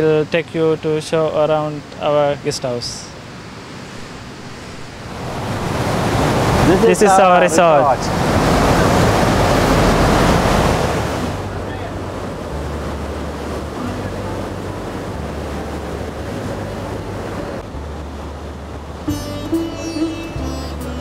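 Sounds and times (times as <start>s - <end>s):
ocean surf washing onto beach: 0.4s - 19.1s
wind buffeting microphone: 3.2s - 19.0s.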